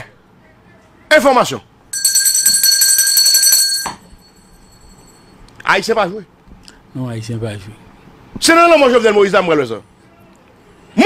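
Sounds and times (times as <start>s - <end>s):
electronic alarm bell ringing: 2.0s - 5.4s.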